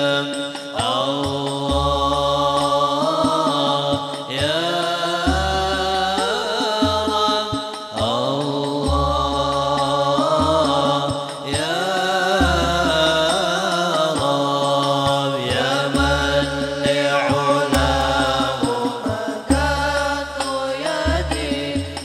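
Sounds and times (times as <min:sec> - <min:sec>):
man singing devotional song: 0:00.0 - 0:22.0
frame drums bass strokes: 0:16.0 - 0:22.0.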